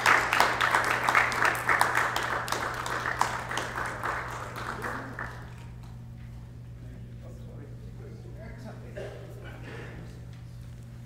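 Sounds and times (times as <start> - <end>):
audience applauding: 0.0 - 6.0.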